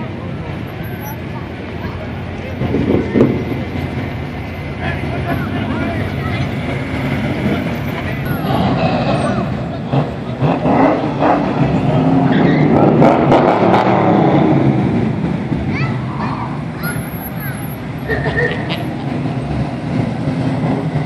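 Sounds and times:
voices of onlookers: 0.0s - 19.6s
cars driving slowly past: 0.0s - 21.0s.

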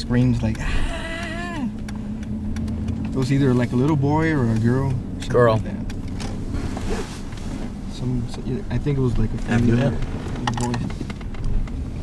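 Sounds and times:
car cabin rumble: 0.0s - 12.0s
short rustle: 6.2s - 11.2s.

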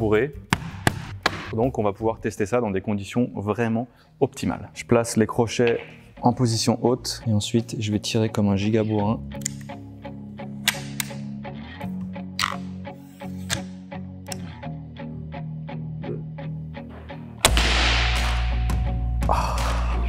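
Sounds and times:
background music with drone: 8.6s - 20.0s
crossbow firing burst: 17.4s - 18.7s.

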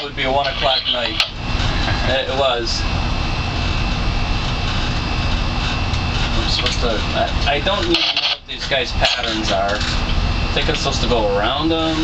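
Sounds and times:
boat engine rumbling: 0.0s - 12.0s.

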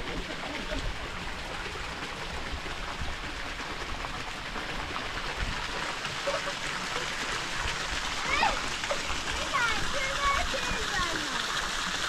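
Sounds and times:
stream water splashing over rock: 0.0s - 12.0s.

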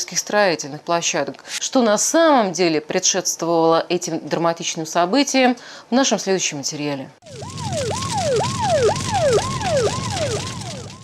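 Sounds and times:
ambulance siren yelping: 7.2s - 11.0s.

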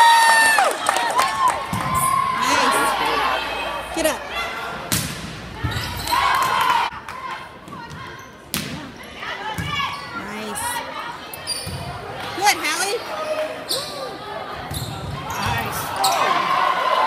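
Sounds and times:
people shouting: 1.9s - 4.7s
volleyball smacks: 4.9s - 5.4s.

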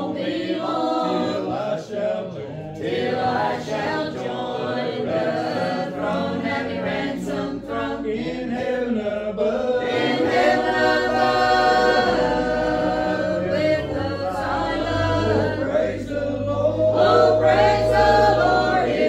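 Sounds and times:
group singing hymn a cappella: 0.0s - 19.0s.

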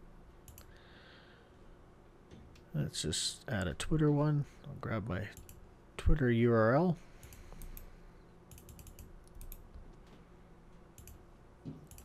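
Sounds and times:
computer mouse and keyboard clicking: 0.5s - 0.7s, 8.5s - 9.7s, 11.0s - 11.2s.

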